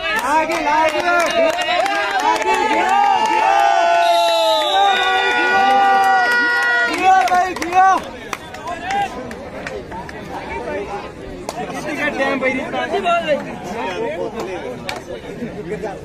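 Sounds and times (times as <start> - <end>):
scattered claps: 0.0 - 3.8, 5.6 - 10.3, 11.4 - 11.8, 14.3 - 15.1
crowd noise: 0.0 - 16.0.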